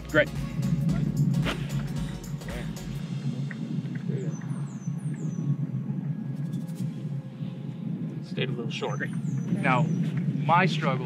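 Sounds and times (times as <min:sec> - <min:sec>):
background music: 0:00.0 - 0:10.5.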